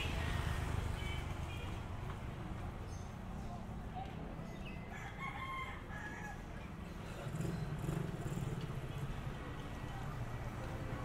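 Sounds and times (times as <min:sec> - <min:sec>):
street background noise: 0:00.0 - 0:11.0
rooster crowing: 0:04.9 - 0:06.5.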